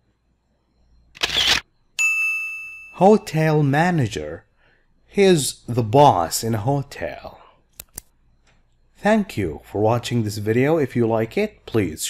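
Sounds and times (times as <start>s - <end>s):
camera shutter sound effect: 1.2s - 1.6s.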